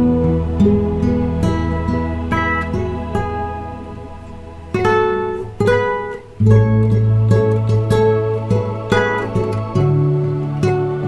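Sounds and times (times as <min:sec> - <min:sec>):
classical guitar fingerstyle: 0:00.0 - 0:11.0.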